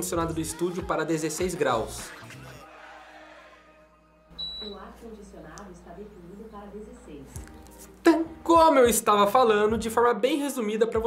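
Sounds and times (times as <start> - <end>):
synthesized female voice: 4.6 - 7.4.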